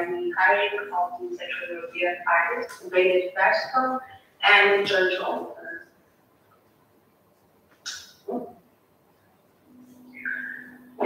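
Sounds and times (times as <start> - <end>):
woman humming in hesitation: 9.7 - 11.0.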